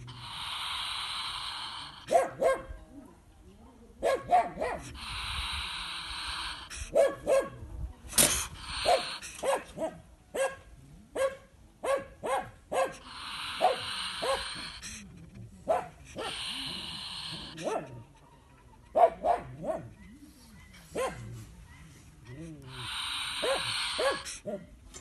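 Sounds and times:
polecat yapping calls: 4.1 - 7.5, 8.1 - 9.9, 12.7 - 18.2, 20.8 - 24.7.

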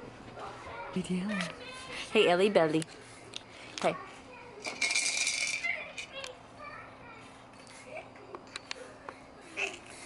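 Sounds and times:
plastic toy rattling: 4.6 - 6.3.

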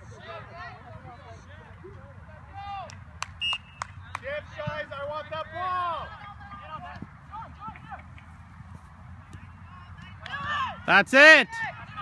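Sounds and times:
distant shouts: 9.4 - 12.0.

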